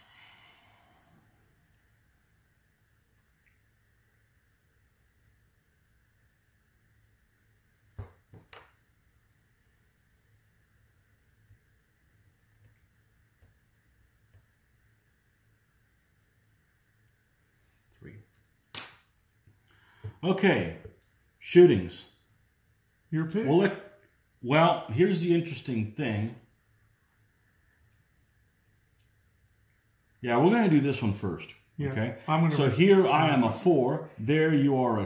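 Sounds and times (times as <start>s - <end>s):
faint steady hum: 0.0s - 35.0s
sharp click: 18.7s - 19.1s.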